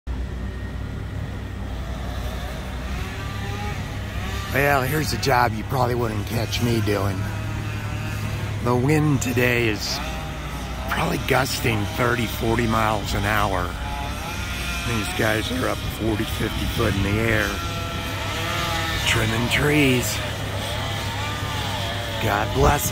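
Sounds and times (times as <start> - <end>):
truck engines rumbling: 0.1 - 22.9.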